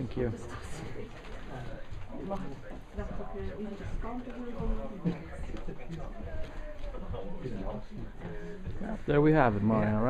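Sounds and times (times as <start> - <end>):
people talking indistinctly: 0.0 - 10.0
shop background noise: 0.0 - 10.0.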